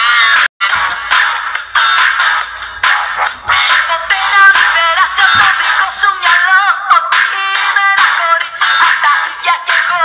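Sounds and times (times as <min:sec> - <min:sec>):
synthesized backing track: 0:00.0 - 0:10.0
pitch-processed singing voice: 0:02.9 - 0:10.0.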